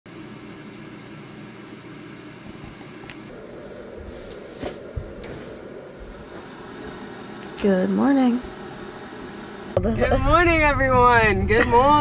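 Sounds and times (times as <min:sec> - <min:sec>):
fan or air conditioning hum: 0:00.1 - 0:12.0.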